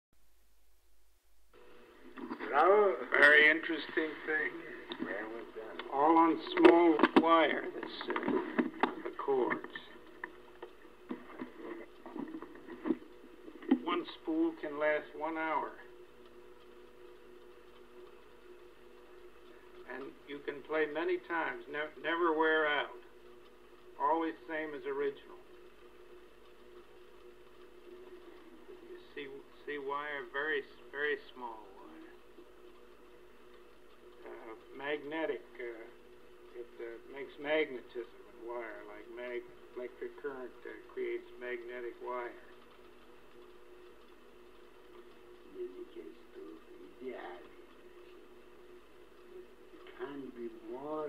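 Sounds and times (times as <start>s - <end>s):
recording hiss and hum: 0.2s - 51.0s.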